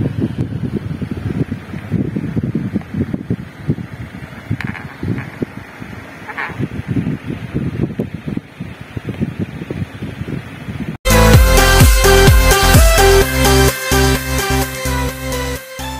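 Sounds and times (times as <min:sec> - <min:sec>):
wind noise on microphone: 0:00.0 - 0:13.2
electric fan running: 0:00.0 - 0:15.9.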